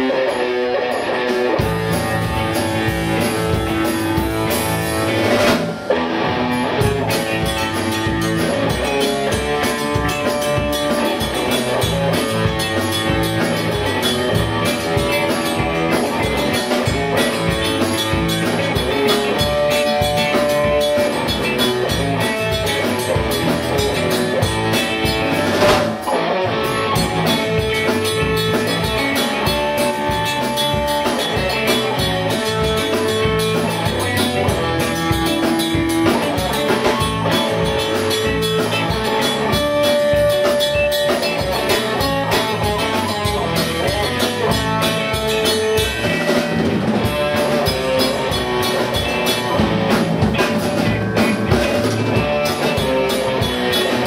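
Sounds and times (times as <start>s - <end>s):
lead guitar melody: 0.0s - 54.0s
rock band playing: 0.0s - 54.0s.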